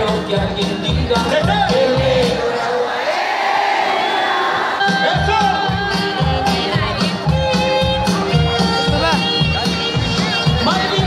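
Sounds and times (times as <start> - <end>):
live band music: 0.0 - 2.6, 4.8 - 11.0
crowd noise: 0.0 - 11.0.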